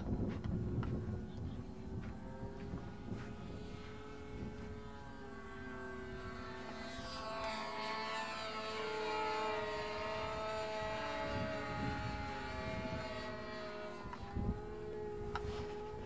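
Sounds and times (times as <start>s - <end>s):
model aircraft engine and propeller: 0.0s - 16.0s.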